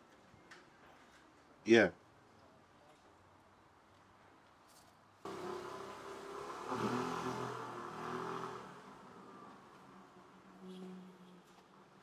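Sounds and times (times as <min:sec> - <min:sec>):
vehicle engine passing by: 0:05.3 - 0:11.3.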